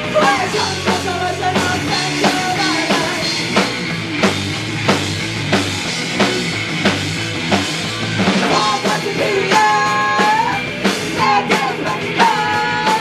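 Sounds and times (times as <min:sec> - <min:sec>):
punk rock band playing: 0:00.0 - 0:13.0
drum kit hits: 0:00.1 - 0:11.7.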